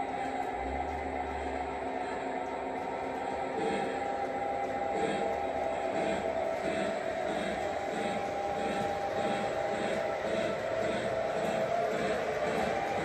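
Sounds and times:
electric motor whine: 0.0s - 13.0s
wheels rumbling on track: 0.0s - 13.0s.

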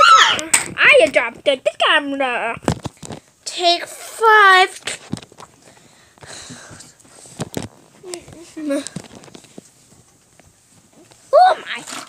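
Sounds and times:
child's voice: 0.0s - 2.6s, 3.5s - 4.8s, 11.3s - 12.0s.

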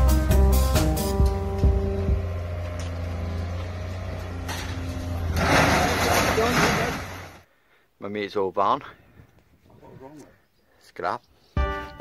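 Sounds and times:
background music: 0.0s - 3.3s, 11.6s - 12.0s
machine engine droning: 1.2s - 5.4s
loud rough noise: 1.7s - 7.4s.

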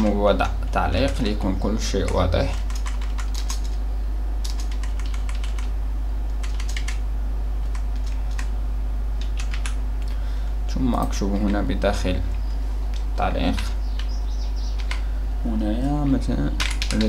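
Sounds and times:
steady low hum: 0.0s - 17.0s
computer keyboard typing: 0.9s - 3.8s, 4.4s - 7.0s, 7.6s - 8.5s, 9.2s - 9.8s, 12.9s - 15.0s, 16.6s - 17.0s.

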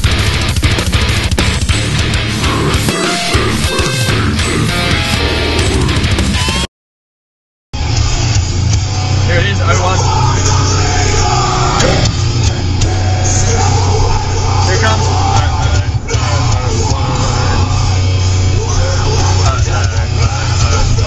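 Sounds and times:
rock music: 0.0s - 6.7s, 7.8s - 21.0s.

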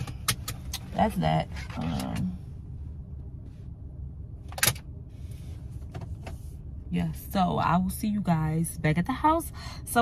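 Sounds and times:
low rumble in car cabin: 0.0s - 10.0s.

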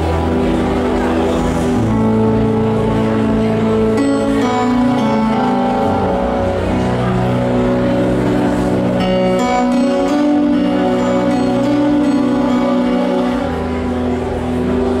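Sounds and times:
keyboard playing held chords: 0.0s - 15.0s.

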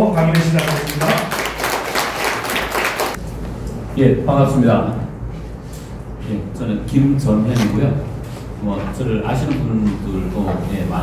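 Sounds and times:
audience applause: 0.2s - 3.2s.

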